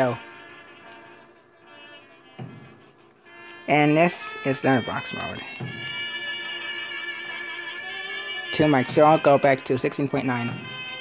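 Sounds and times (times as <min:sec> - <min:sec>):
faint brass band music: 0:00.0 - 0:11.0.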